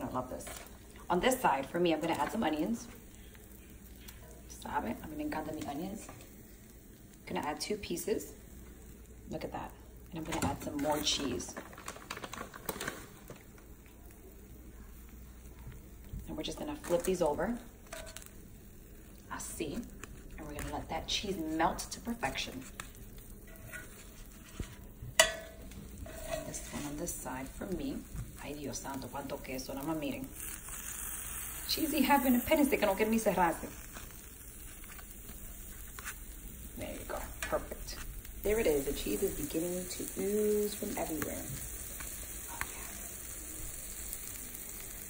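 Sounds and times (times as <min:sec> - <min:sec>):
food sizzling in grill pan: 0:00.0 - 0:45.0
woman's voice: 0:09.3 - 0:11.6, 0:16.2 - 0:17.7, 0:19.3 - 0:22.7, 0:26.4 - 0:30.3, 0:31.7 - 0:33.7, 0:36.8 - 0:41.6.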